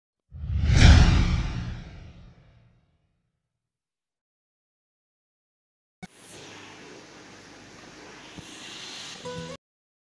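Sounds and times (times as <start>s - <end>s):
whoosh with deep rumble: 0.4s - 2.6s.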